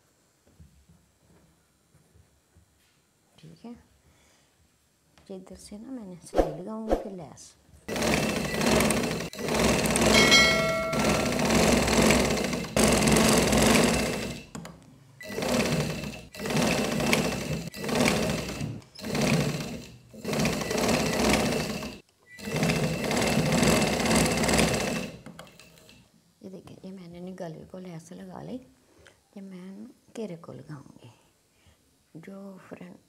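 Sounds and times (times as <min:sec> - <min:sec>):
sewing machine running: 0:07.9 - 0:14.6, 0:15.2 - 0:26.0
brief ringing tone: 0:10.2 - 0:11.5.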